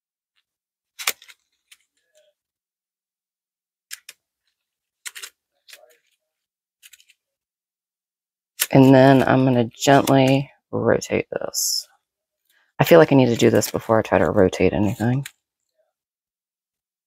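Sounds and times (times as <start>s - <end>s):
paper crinkling: 1.0s - 2.4s, 4.0s - 7.3s.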